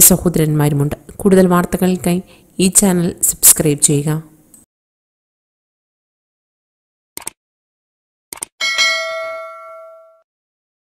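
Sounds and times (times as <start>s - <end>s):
notification bell chime: 8.6s - 10.2s.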